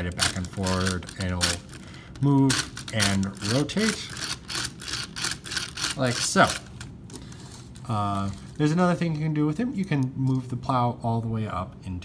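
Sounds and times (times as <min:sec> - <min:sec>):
toy drill clicking: 0:02.5 - 0:06.7.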